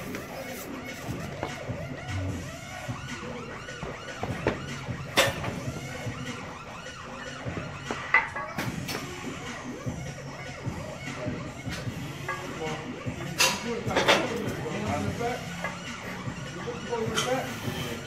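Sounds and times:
wavering siren-like sound: 0:00.0 - 0:18.0.

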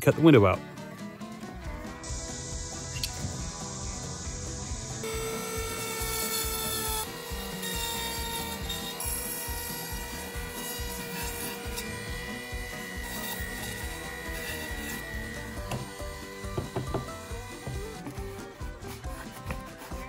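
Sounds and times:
rotary tool motor whine: 0:01.7 - 0:20.0
bit grinding into foam: 0:01.8 - 0:20.0.

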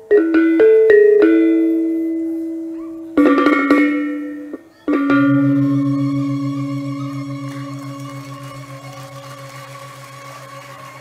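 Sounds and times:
tuned gong-kettles struck: 0:04.9 - 0:10.8
deep throbbing gong: 0:05.0 - 0:11.0.

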